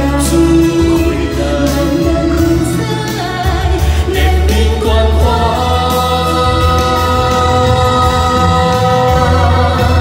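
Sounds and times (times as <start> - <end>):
band accompaniment with bass: 0.0 - 10.0
man and woman singing duet: 0.0 - 10.0.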